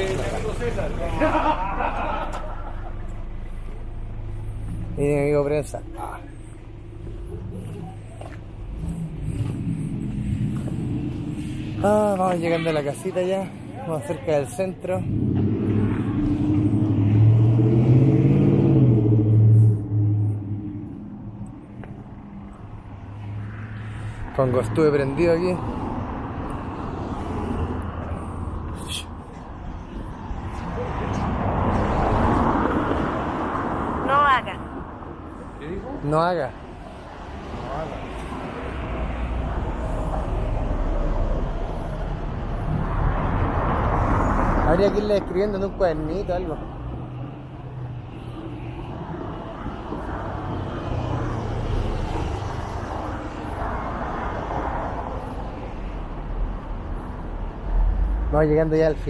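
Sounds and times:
car passing: 0.0s - 59.0s
steady traffic: 0.0s - 59.0s.

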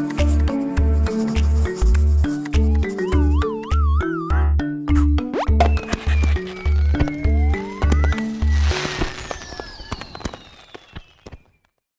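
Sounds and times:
whistle sliding downward: 5.6s - 11.5s
crackles and pops: 5.6s - 11.9s.

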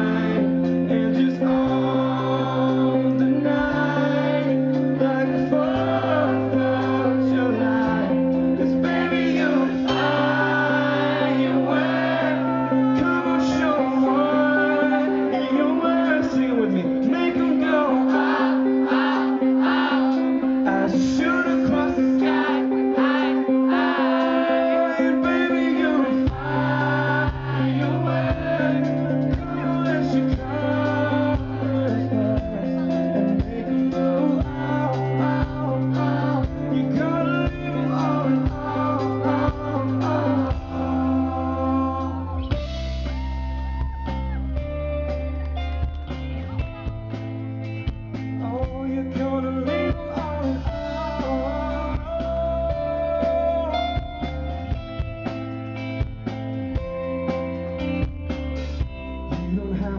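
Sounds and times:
man singing into microphone: 0.0s - 44.3s, 48.4s - 54.3s, 59.3s - 59.9s
acoustic guitar: 0.0s - 59.9s
bass line: 0.0s - 59.9s.

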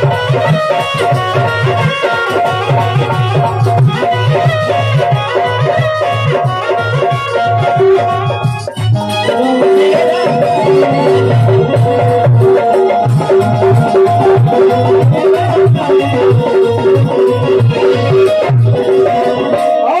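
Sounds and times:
electronic keyboard melody: 0.0s - 20.0s
hand drums: 0.0s - 20.0s.

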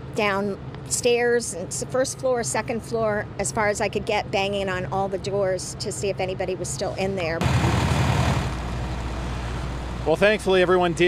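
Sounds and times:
fire engine running: 7.4s - 11.0s.

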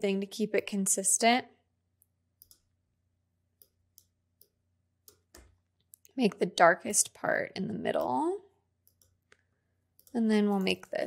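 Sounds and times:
computer mouse clicks: 2.0s - 2.7s, 8.8s - 9.4s.

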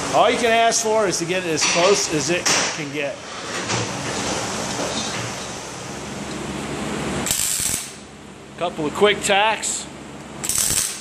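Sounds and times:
welding arc burst: 7.2s - 8.0s, 10.4s - 11.0s.

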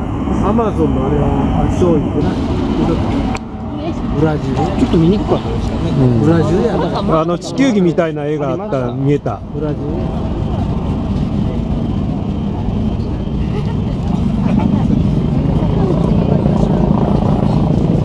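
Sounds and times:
traffic rumble of passing cars: 0.0s - 18.0s.

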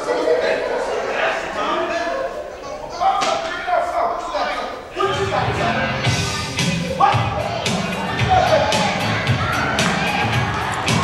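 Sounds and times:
actors' voices on stage: 0.0s - 11.0s.

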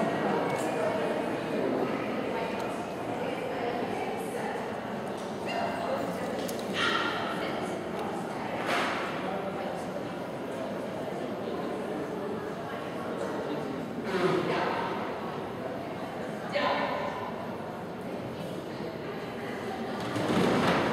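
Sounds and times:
background chatter: 0.0s - 20.9s
dog barking: 6.8s - 7.3s.

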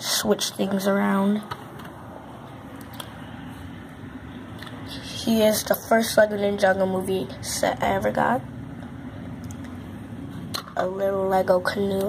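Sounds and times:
low room background noise: 0.0s - 12.0s.

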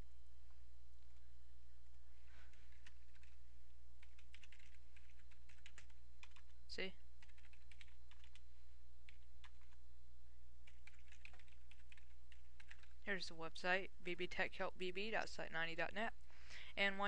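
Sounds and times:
steady low hum: 0.0s - 17.0s
typing on computer keyboard: 2.5s - 3.4s, 4.0s - 6.6s, 7.2s - 8.4s, 9.1s - 9.8s, 10.6s - 13.0s.

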